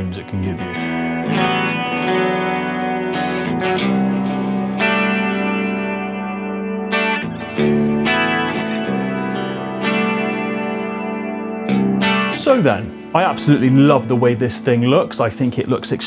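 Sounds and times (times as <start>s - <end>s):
electric guitar chords ringing: 0.0s - 16.0s.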